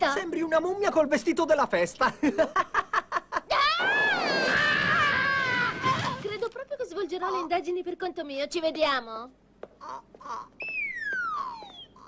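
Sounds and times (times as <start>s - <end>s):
descending cartoon whistle: 10.6s - 12.0s.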